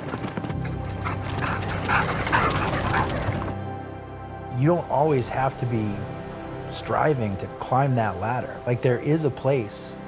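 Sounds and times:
background music: 0.0s - 10.0s
sled dogs barking and yipping: 0.1s - 3.6s.

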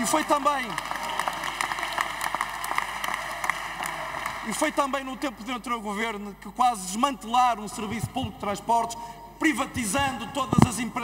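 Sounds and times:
crowd applause: 0.0s - 4.8s
person speaking: 4.4s - 11.0s.

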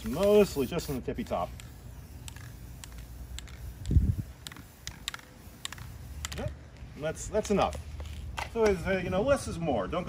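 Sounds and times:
spray can sputtering clicks: 0.0s - 6.5s.

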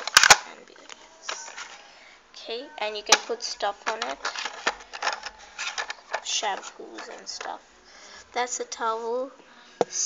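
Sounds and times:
handling of plastic toy: 0.0s - 0.4s, 3.1s - 7.6s
sharp plastic clicks: 0.0s - 0.5s.

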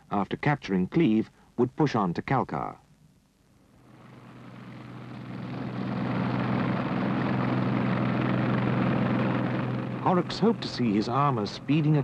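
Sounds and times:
engine drone with rushing noise: 3.7s - 12.0s.

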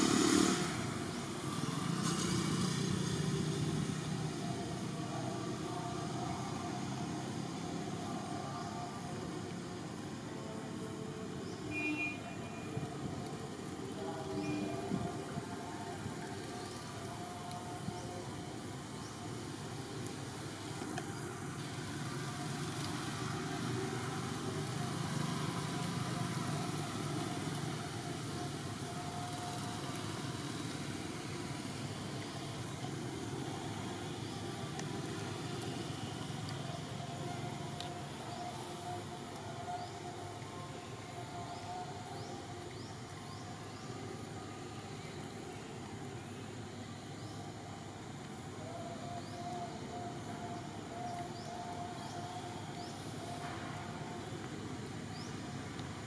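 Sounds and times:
outdoor background noise: 0.0s - 56.0s.

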